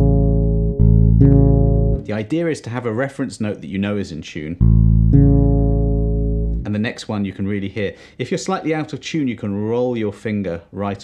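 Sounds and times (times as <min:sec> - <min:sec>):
fretless bass notes ringing: 0:00.0 - 0:02.3, 0:04.6 - 0:06.9.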